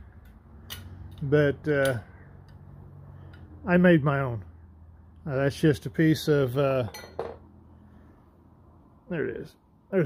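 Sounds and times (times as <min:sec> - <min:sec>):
low steady background hum: 0:00.0 - 0:10.0
light metal clink: 0:06.9 - 0:07.4.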